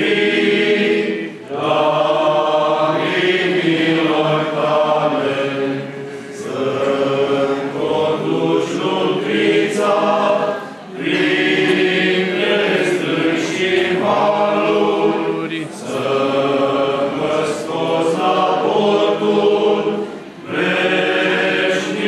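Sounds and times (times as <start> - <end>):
male choir singing a hymn: 0.0 - 22.0.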